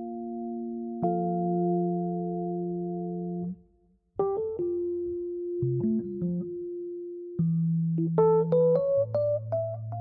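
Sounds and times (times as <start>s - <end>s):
electric piano: 0.0s - 10.0s.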